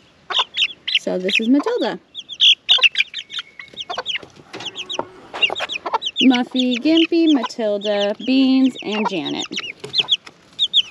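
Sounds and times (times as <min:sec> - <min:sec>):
chicks peeping: 0:00.0 - 0:10.9.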